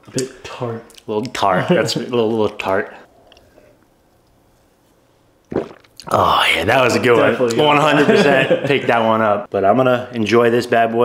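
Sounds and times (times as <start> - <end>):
sip from a cup: 5.5 - 6.3.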